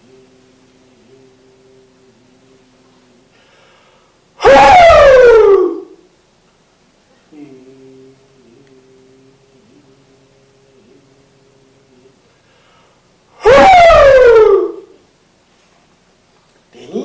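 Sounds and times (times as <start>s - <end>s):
faint steady hum: 0.0s - 17.0s
man shouting: 4.4s - 6.0s, 13.4s - 14.8s.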